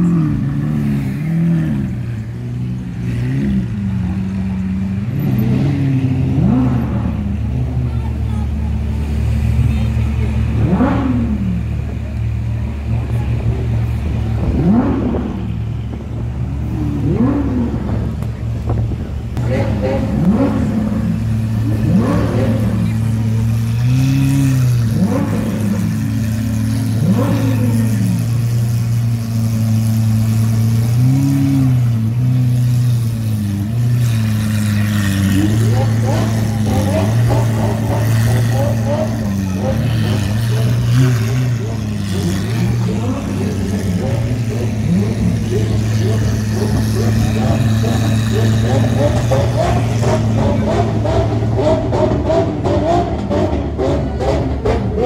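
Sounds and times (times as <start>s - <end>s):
car engine idling: 0.0s - 55.0s
crowd chatter: 0.0s - 55.0s
engine throttle blips: 5.3s - 55.0s.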